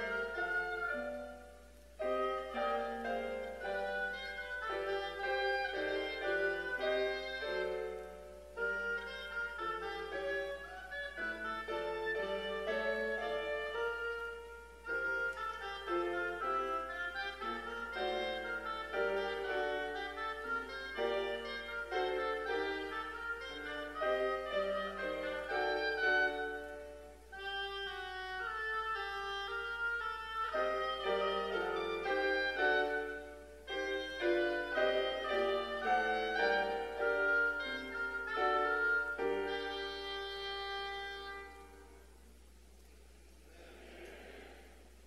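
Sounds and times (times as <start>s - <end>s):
clarinet melody: 0.0s - 42.4s
piano accompaniment: 0.0s - 42.4s.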